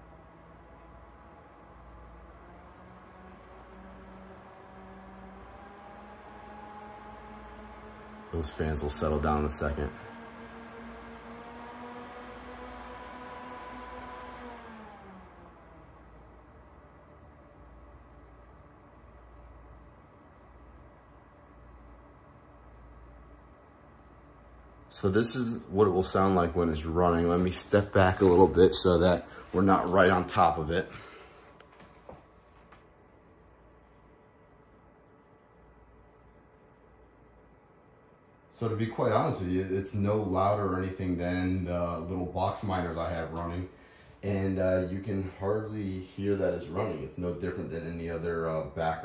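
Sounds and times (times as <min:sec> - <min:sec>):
cooling fans whining: 0:00.0 - 0:49.0.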